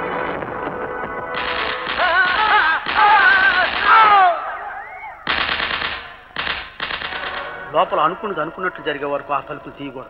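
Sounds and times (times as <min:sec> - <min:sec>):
automatic gunfire bursts: 0:01.4 - 0:04.1, 0:05.3 - 0:07.5.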